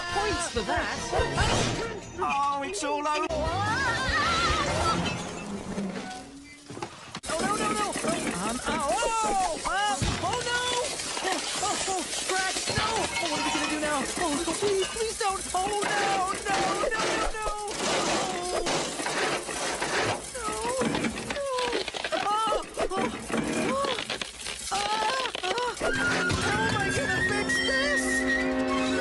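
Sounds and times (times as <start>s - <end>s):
clattering smashing crash: 3.7s - 29.0s
cartoon music: 25.9s - 29.0s.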